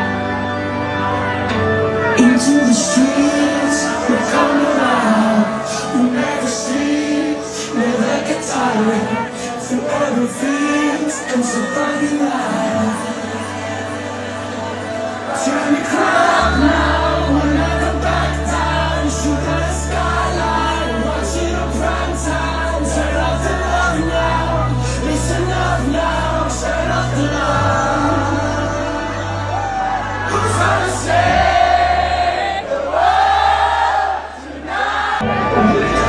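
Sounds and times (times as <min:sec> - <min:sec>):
sung melody: 0:00.0 - 0:34.0
crowd singing along: 0:00.0 - 0:36.0.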